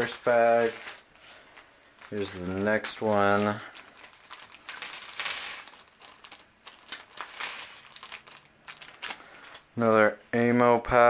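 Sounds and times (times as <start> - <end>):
plastic pieces clattering on table: 0.0 - 9.6
plastic bag rustle: 0.0 - 9.7.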